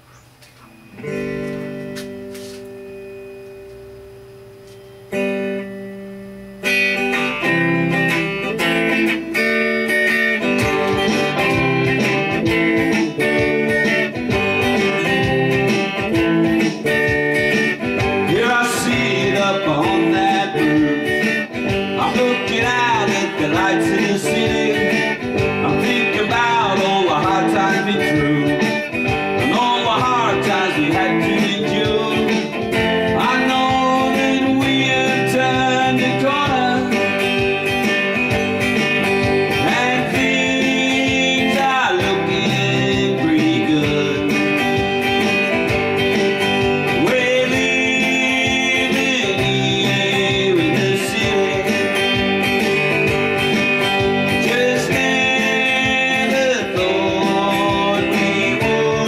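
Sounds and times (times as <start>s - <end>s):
electric guitar chords and riffing: 0.0s - 59.0s
man singing: 18.0s - 37.7s, 39.3s - 45.3s, 46.6s - 53.0s, 54.2s - 59.0s.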